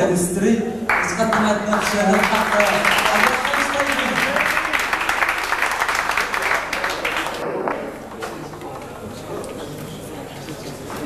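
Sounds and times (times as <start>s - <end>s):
audience applauding: 0.9s - 8.4s.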